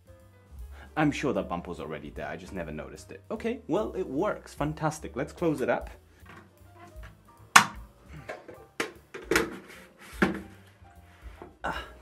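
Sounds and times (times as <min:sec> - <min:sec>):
quiet background music: 0:00.0 - 0:12.0
plastic light cover knocks and clicks: 0:06.3 - 0:10.5.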